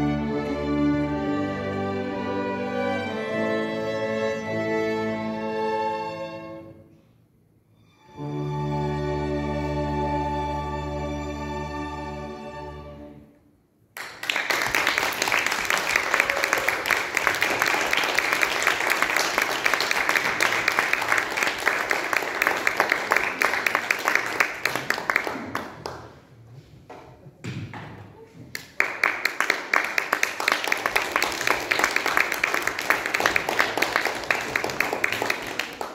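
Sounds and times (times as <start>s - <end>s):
audience applauding: 14.0s - 26.2s, 28.5s - 35.9s.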